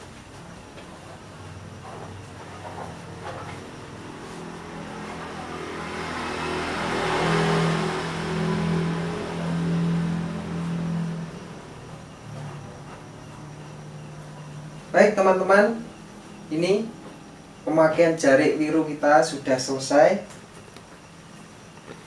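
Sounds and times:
vehicle engine passing by: 0:01.8 - 0:17.4.

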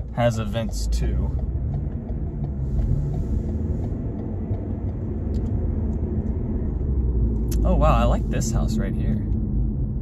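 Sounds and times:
car driving low rumble: 0:00.0 - 0:10.0.

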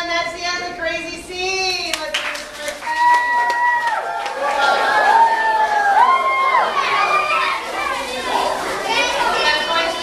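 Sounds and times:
children talking and calling out: 0:02.7 - 0:10.0.

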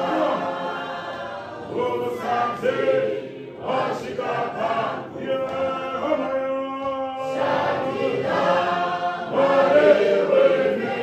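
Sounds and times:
choir singing a hymn: 0:00.0 - 0:06.3, 0:07.2 - 0:11.0.

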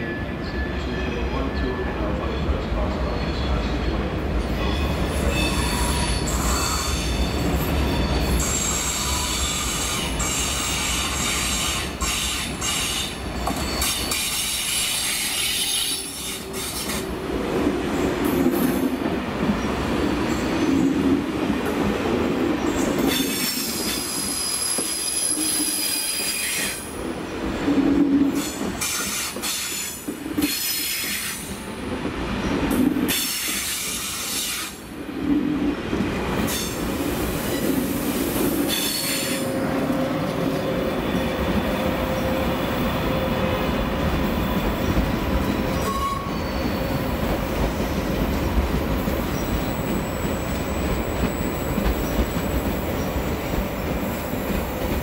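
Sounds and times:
train wheels squealing: 0:00.0 - 0:04.0, 0:04.6 - 0:17.0, 0:22.7 - 0:26.9, 0:38.7 - 0:48.5, 0:49.2 - 0:53.1
train low rumble: 0:26.7 - 0:55.0.

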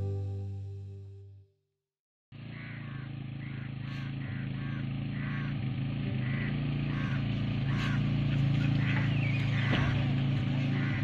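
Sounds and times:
vehicle engine running: 0:02.3 - 0:11.0.

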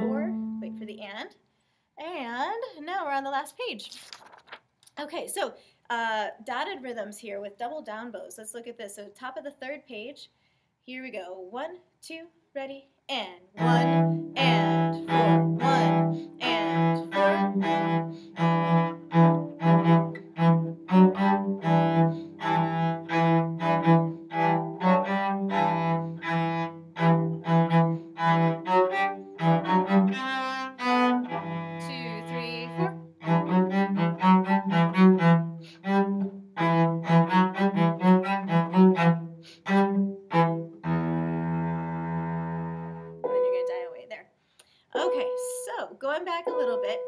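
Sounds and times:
solo cello bowed notes: 0:00.0 - 0:01.1, 0:13.6 - 0:43.7.

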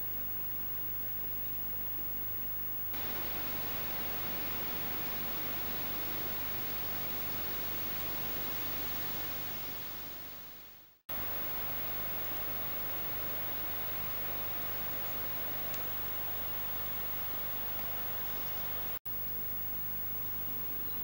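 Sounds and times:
quiet hiss: 0:00.0 - 0:21.0
low camcorder hum: 0:00.5 - 0:21.0
rippling river rushing: 0:03.0 - 0:10.0.

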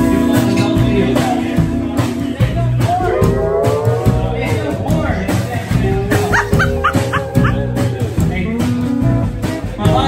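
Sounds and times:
country band playing: 0:00.0 - 0:10.0
high rising yelps: 0:06.3 - 0:07.6.

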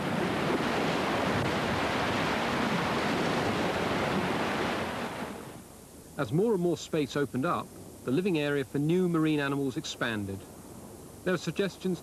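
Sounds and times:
surf breaking on rocks: 0:00.0 - 0:05.5.

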